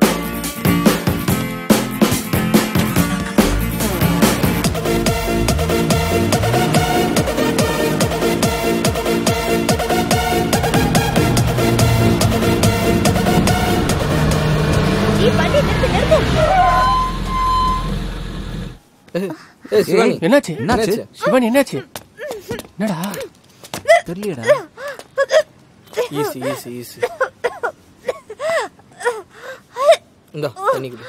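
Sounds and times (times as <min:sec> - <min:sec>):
vehicle engine low hum: 0:02.8 - 0:18.8
electronic dance music: 0:03.0 - 0:14.6
voices calling: 0:03.3 - 0:18.2, 0:19.1 - 0:23.3, 0:25.9 - 0:27.4
woman gasping for breath: 0:23.9 - 0:25.4, 0:28.4 - 0:30.0.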